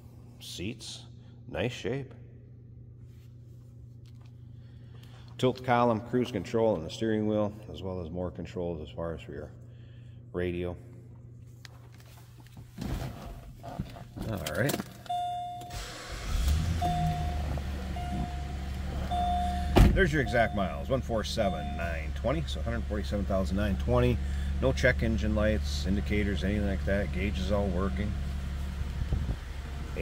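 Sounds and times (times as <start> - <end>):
dashboard chime beeping: 15.1 - 15.9, 16.8 - 22.2
car engine starting and idling: 15.1 - 30.0
faint low hum: 16.3 - 30.0.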